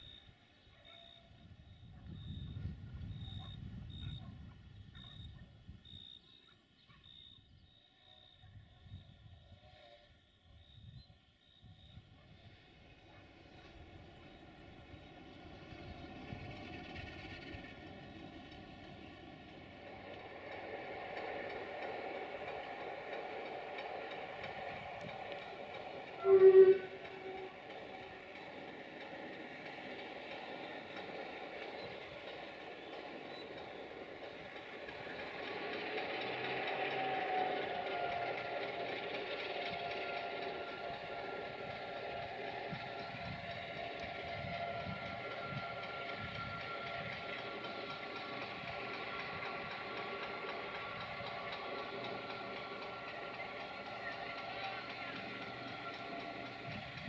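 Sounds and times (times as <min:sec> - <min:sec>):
diesel train pulling away: 0:07.4 - 0:57.0
diesel locomotive engine running: 0:11.6 - 0:57.0.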